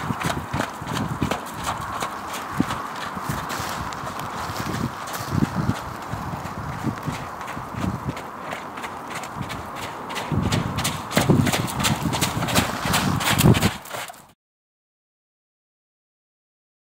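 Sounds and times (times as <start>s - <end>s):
horse hoofbeats on wet sand: 0.0s - 14.4s.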